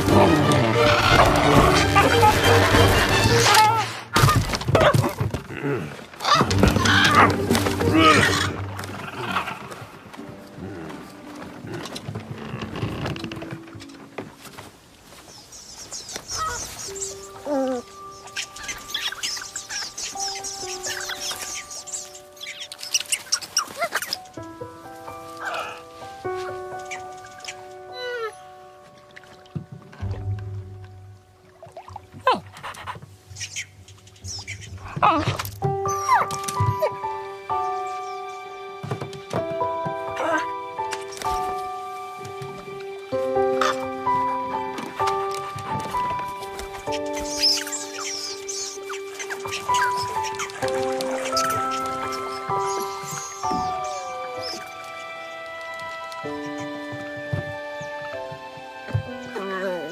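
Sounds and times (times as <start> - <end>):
soft orchestral score: 0.0 - 4.2, 6.2 - 59.9
background music: 0.0 - 59.9.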